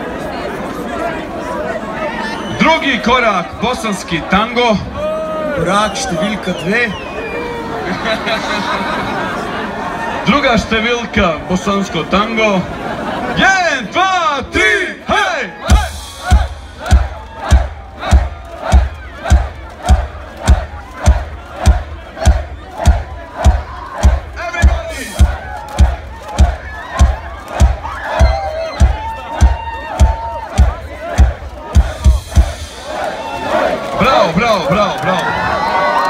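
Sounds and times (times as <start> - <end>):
crowd chanting and shouting: 0.0 - 36.0
steady bass drum beat: 15.6 - 33.8.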